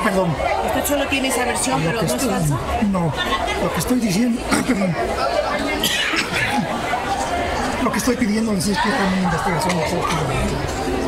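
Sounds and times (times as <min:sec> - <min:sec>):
voices talking over one another: 0:00.0 - 0:11.0.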